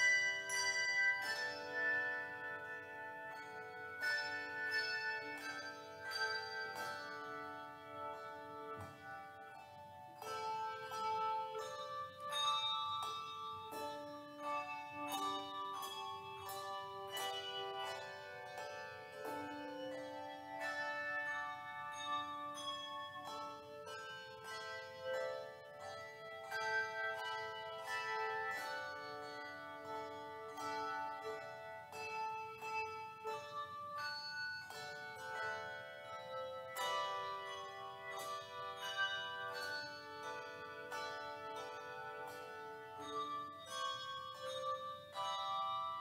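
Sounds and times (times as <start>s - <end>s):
handbell choir ringing a hymn: 0.0s - 46.0s.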